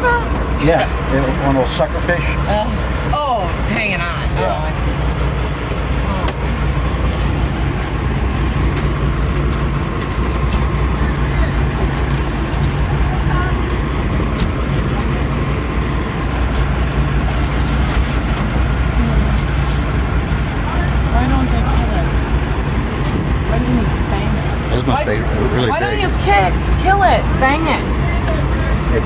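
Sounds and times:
boat engines droning: 0.0s - 29.0s
wind and water noise: 0.0s - 29.0s.

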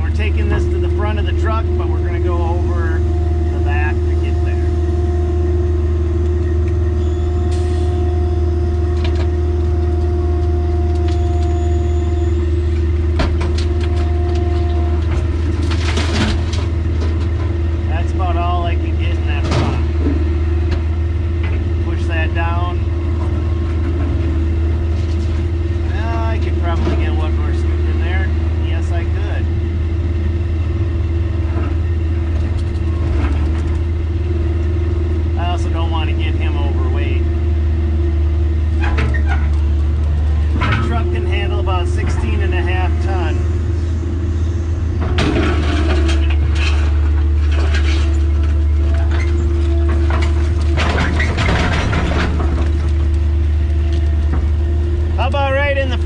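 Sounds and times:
excavator diesel engine running: 0.0s - 56.0s.

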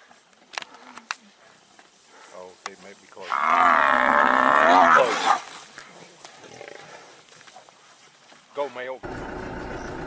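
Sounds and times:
buffalo bellowing in distress: 3.3s - 5.4s.

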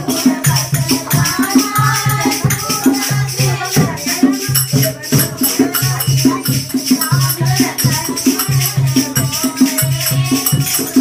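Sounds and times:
jingling rattling percussion: 0.0s - 11.0s.

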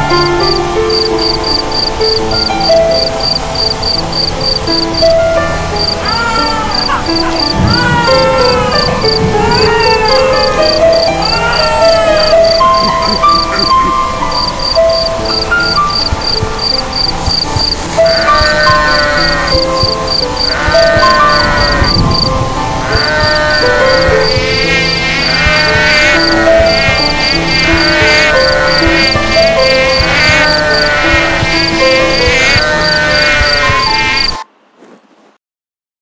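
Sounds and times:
falling chirping calls: 0.0s - 34.4s
insect chirping: 0.0s - 34.4s
calm slow music: 0.0s - 34.5s.

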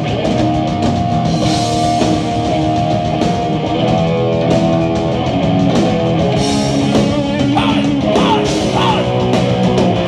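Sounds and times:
electric guitar: 0.0s - 10.0s
live heavy metal band: 0.0s - 10.0s.

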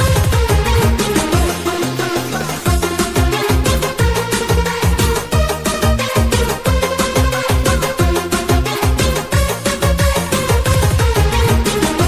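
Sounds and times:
driving kick drum: 0.0s - 1.7s, 2.6s - 12.0s
electronic dance music: 0.0s - 12.0s.

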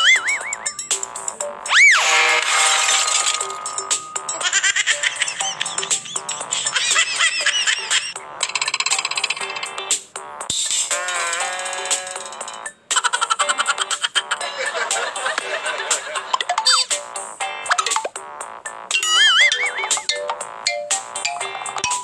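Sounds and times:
cartoon boing: 0.0s - 0.8s, 19.0s - 20.1s
fast warbling tones: 0.0s - 9.4s, 18.8s - 22.0s
background music: 0.0s - 22.0s.

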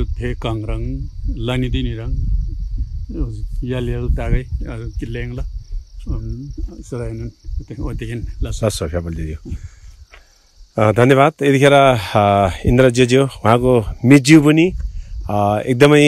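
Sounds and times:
man talking: 0.0s - 9.7s, 10.8s - 16.0s
high-pitched insect drone: 0.0s - 16.0s.

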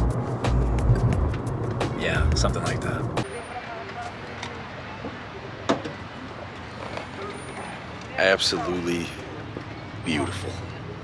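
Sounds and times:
hum of distant traffic: 0.0s - 11.0s.

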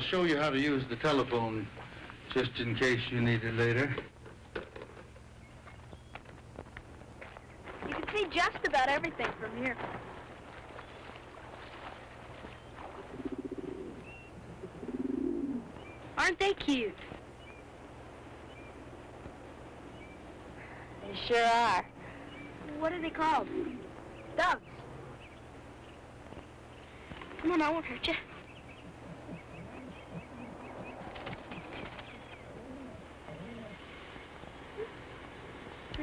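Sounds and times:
low fluttering animal call: 10.2s - 15.8s, 23.3s - 25.6s, 28.2s - 35.6s
low repeated bird notes: 10.3s - 35.8s
small bird chirping: 22.1s - 33.9s.

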